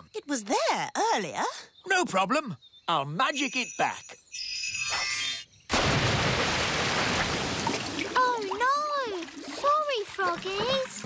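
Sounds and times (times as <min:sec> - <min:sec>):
water gushing: 0:05.7 - 0:11.0.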